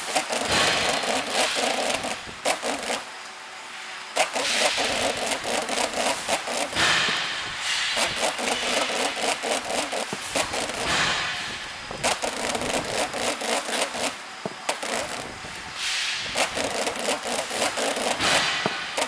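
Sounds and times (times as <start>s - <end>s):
machine running: 0.0s - 19.0s
plastic film crackling: 4.0s - 19.0s.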